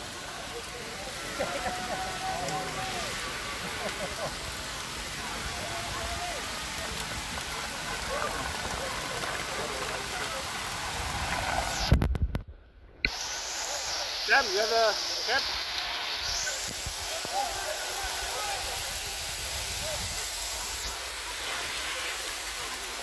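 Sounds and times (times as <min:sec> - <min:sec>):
faint voices: 0:00.0 - 0:11.6, 0:13.1 - 0:23.0
hail hitting road and cars: 0:00.0 - 0:11.9, 0:13.1 - 0:23.0.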